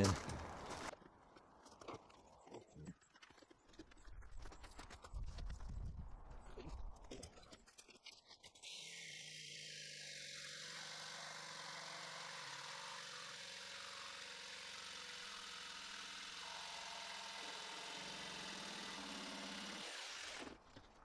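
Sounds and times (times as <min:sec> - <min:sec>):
jigsaw cutting through board: 0:08.0 - 0:21.0.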